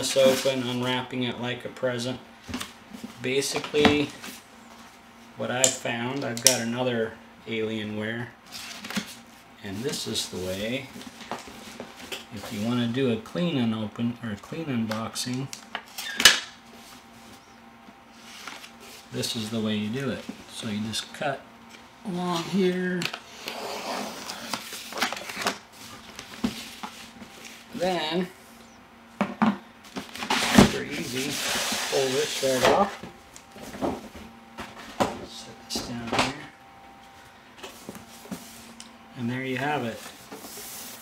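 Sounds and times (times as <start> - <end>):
faint room hum: 0.0 - 41.0.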